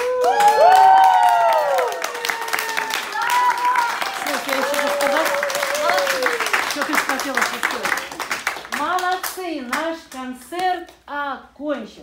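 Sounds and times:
hands clapping: 0.0 - 10.7.

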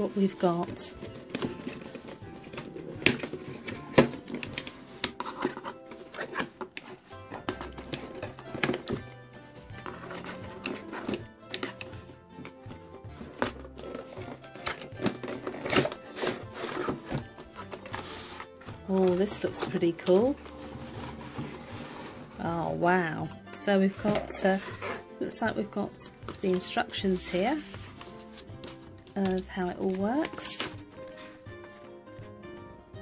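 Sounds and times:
cardboard box scraping and clicking: 1.0 - 9.1, 9.8 - 12.5, 13.2 - 22.4, 24.0 - 25.0
background music with stepping bass: 26.0 - 33.0.

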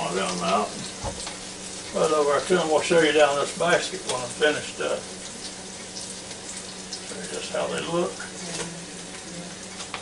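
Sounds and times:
air fryer hiss and hum: 0.0 - 10.0.

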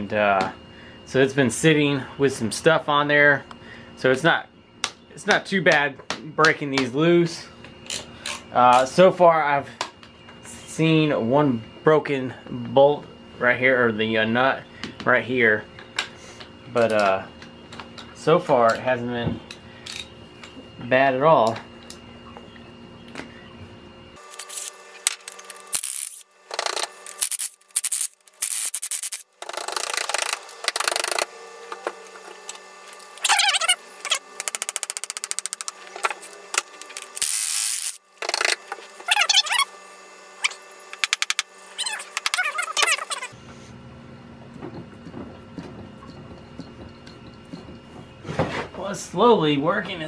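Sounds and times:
ratchet wrench clicking: 25.3 - 31.3, 34.1 - 35.7, 37.0 - 38.6
nuts squeaking on studs: 33.2 - 35.7, 40.4 - 43.4.

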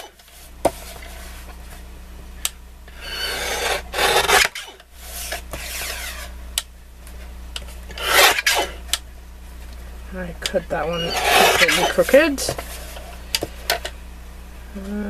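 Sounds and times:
paper trimmer rasping strokes: 2.9 - 6.3, 7.9 - 8.8, 10.8 - 13.0.

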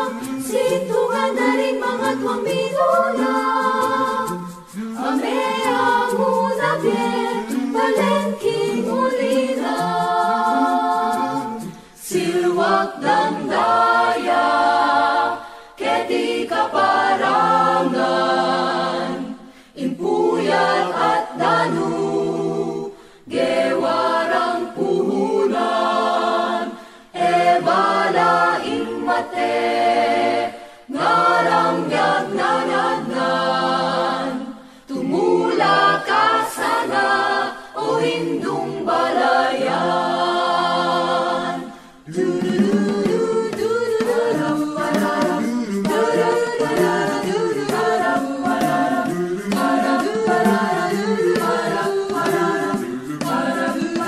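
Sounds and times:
choir singing unaccompanied: 0.0 - 54.0.

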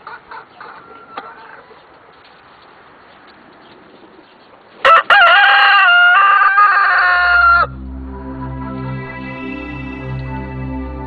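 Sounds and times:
rooster crowing: 0.6 - 1.8, 4.8 - 7.8.

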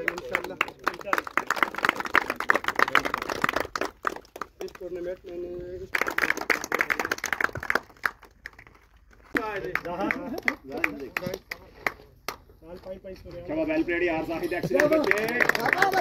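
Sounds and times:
men talking: 0.0 - 3.7, 4.4 - 7.4, 9.3 - 16.0
hand claps: 0.0 - 5.0, 5.9 - 12.5, 14.6 - 16.0.

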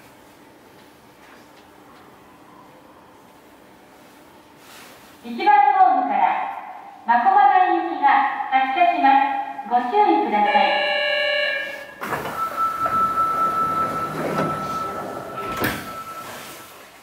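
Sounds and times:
automated announcement over speakers: 5.4 - 16.6
steady high tone: 10.4 - 16.4
sliding doors opening: 11.9 - 17.0.

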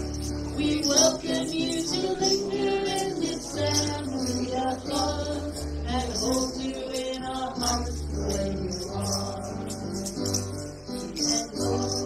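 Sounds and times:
light high percussion: 0.0 - 12.0
person singing: 0.6 - 12.0.

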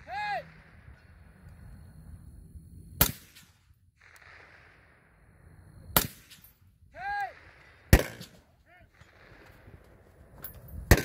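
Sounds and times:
rifle shots with echo: 3.0 - 5.0, 5.9 - 6.6, 7.3 - 10.1.

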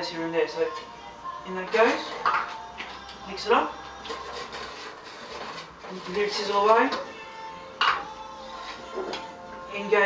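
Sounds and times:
wooden spoon scraping metal pot: 1.6 - 7.1, 7.8 - 9.3.

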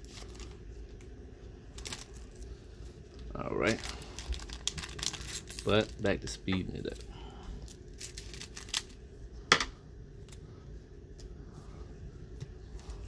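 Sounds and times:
foil wrapper crinkling and tearing: 0.0 - 9.0
low steady hum: 0.0 - 13.0.

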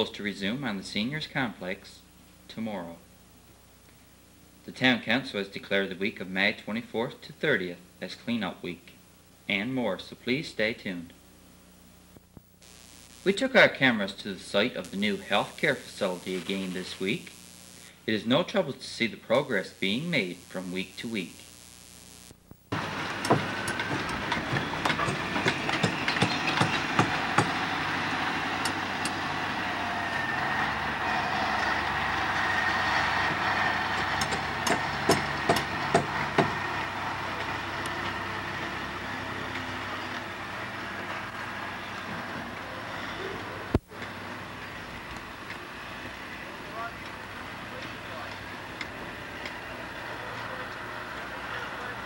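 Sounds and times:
construction machinery running: 22.7 - 52.0.

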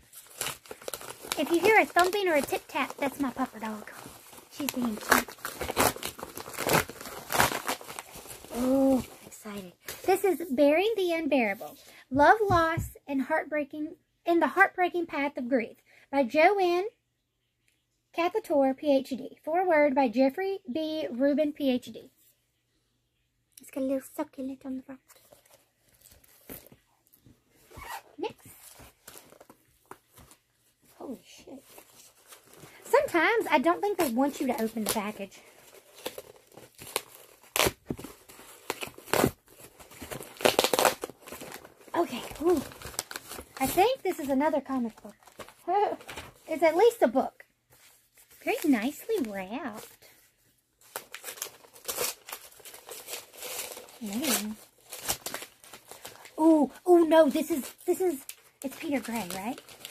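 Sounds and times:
packaging rustling: 0.0 - 10.1, 27.6 - 46.6, 50.8 - 56.4, 57.5 - 59.9
paper tearing and crinkling: 0.0 - 10.2, 31.0 - 46.5, 50.8 - 56.3, 57.5 - 59.9.

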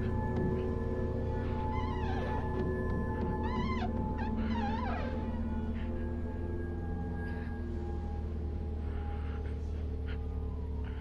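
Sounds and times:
high wavering cries: 0.0 - 9.4
low sustained drone: 0.0 - 11.0.

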